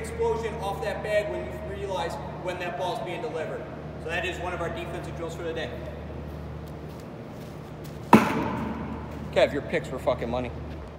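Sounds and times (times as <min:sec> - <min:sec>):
echo in large hall: 0:08.0 - 0:10.4
ball smacking into glove: 0:08.1 - 0:09.2.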